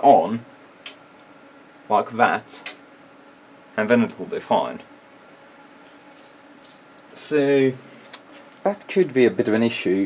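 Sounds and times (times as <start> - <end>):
faint steady hiss and hum: 0.0 - 10.0.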